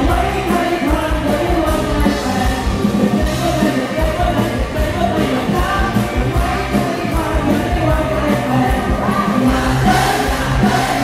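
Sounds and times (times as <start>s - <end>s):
live band music: 0.0s - 11.0s
man singing: 0.0s - 11.0s
steady drum beat: 0.0s - 11.0s.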